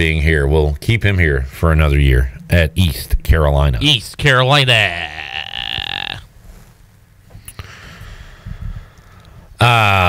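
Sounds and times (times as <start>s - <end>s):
man grunting: 4.7s - 6.2s, 9.6s - 10.0s.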